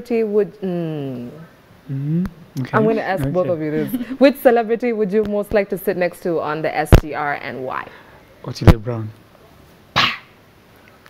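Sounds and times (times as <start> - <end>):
person vocal burst: 1.9 - 2.8.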